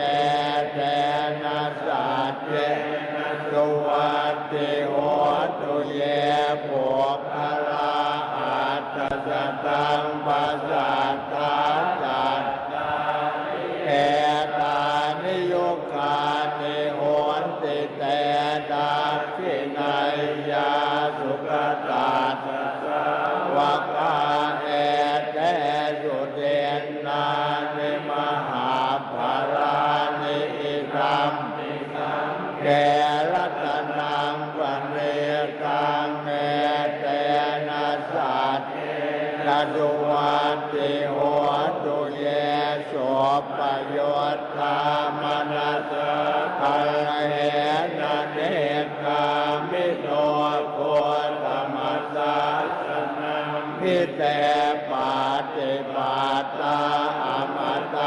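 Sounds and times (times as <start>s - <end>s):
monks chanting in unison: 0.0s - 58.0s.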